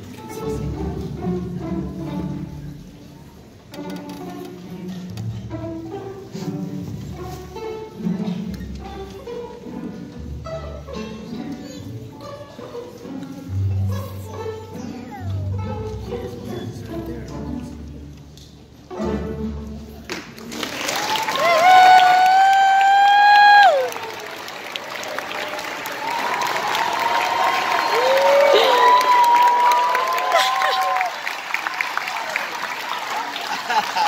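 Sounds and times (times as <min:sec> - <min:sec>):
string orchestra playing: 0:00.0 - 0:20.7
audience clapping and cheering: 0:20.1 - 0:34.0
loud whoops: 0:21.0 - 0:24.0, 0:26.0 - 0:31.2.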